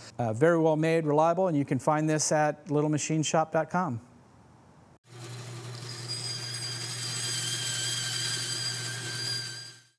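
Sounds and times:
electric motor machine humming: 0:05.1 - 0:09.2.

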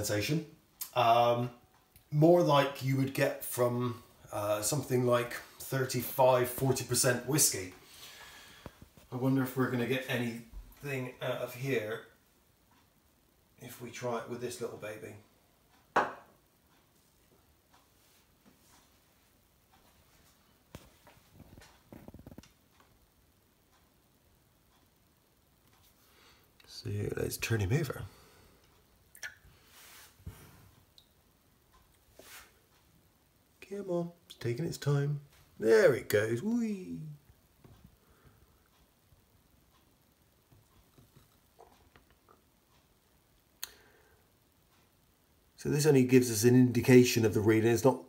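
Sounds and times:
faint scattered ticks: 0:00.6 - 0:48.0
faint clicks and light taps: 0:15.7 - 0:26.8, 0:30.3 - 0:34.5, 0:37.1 - 0:45.6.

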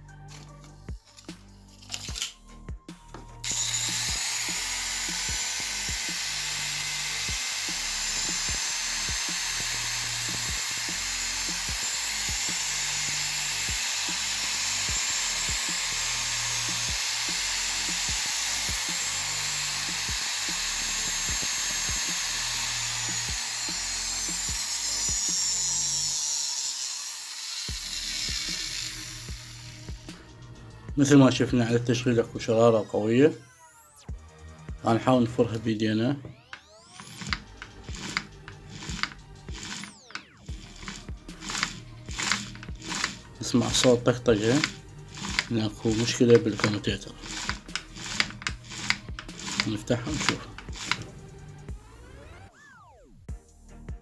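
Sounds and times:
angle grinder motor whine: 0:03.4 - 0:30.2, 0:36.3 - 0:52.8.

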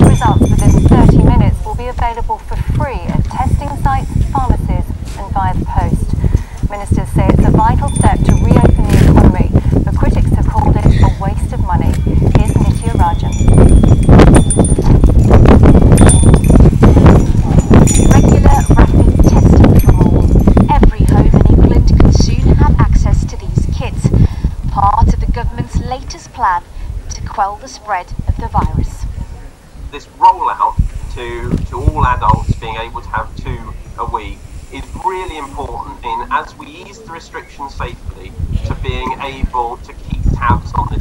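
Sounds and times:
person talking: 0:00.0 - 0:13.4, 0:17.4 - 0:29.0, 0:30.0 - 0:41.0
indistinct voices: 0:00.0 - 0:13.5, 0:16.8 - 0:41.0
low background rumble: 0:00.0 - 0:41.0.

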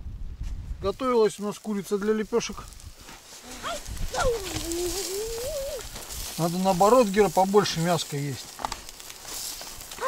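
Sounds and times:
wavering vocal call: 0:04.2 - 0:05.8.

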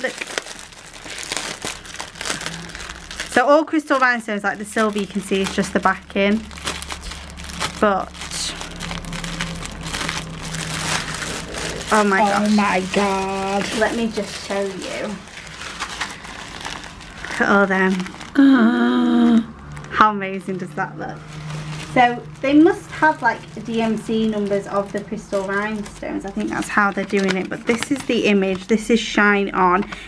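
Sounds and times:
plastic packaging crinkling: 0:00.0 - 0:18.4, 0:19.5 - 0:30.0.

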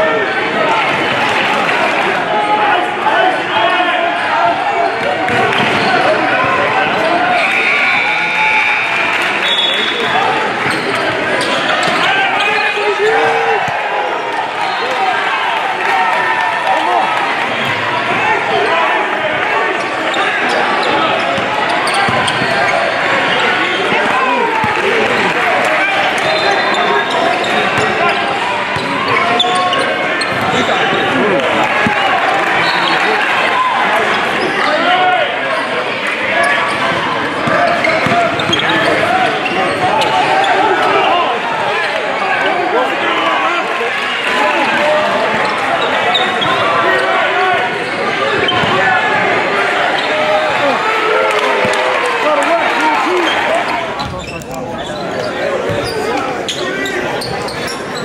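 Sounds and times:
chatter of many voices: 0:00.0 - 0:58.0
basketball bouncing on court floor: 0:37.4 - 0:38.7.

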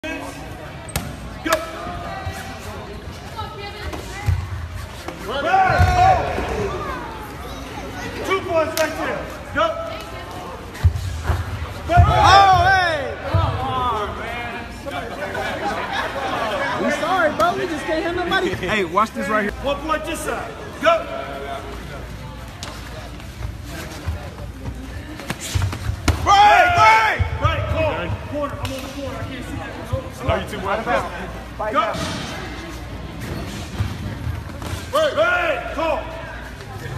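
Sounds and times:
murmur of spectator chatter: 0:00.0 - 0:36.9.

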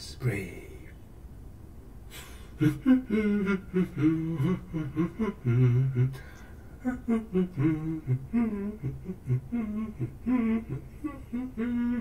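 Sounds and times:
breathy sound: 0:02.1 - 0:12.0
man humming a tune: 0:02.1 - 0:12.0.

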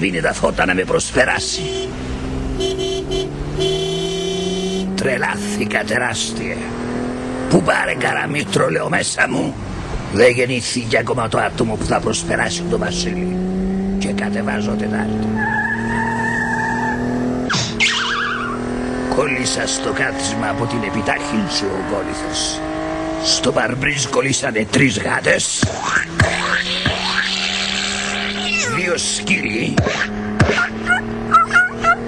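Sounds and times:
car engine running: 0:00.0 - 0:10.2, 0:11.0 - 0:32.0
car horn honking: 0:01.3 - 0:05.0
tyre screech: 0:15.3 - 0:18.7, 0:25.8 - 0:28.9.

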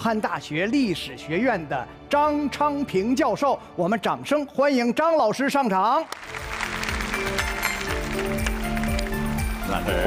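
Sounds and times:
audience applauding: 0:06.1 - 0:10.0
entrance music with low beat: 0:06.2 - 0:10.0.

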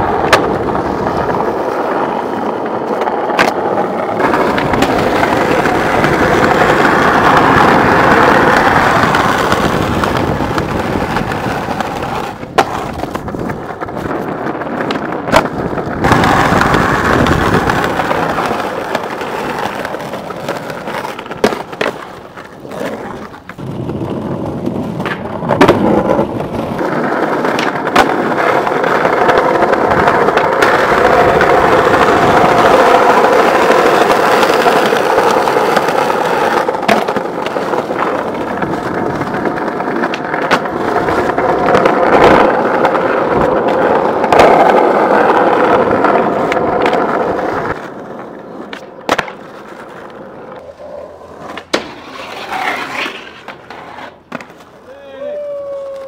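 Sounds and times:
skateboard wheels rolling on concrete: 0:00.0 - 0:56.0
skateboard wooden clacks: 0:00.0 - 0:56.0.

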